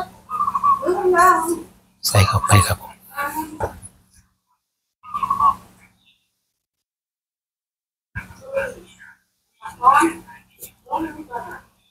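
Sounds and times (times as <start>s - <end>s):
man's voice: 2.0s - 2.9s.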